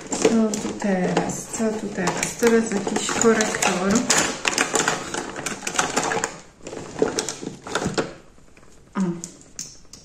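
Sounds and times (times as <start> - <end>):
cosmetics containers clattering: 0.0 - 8.7.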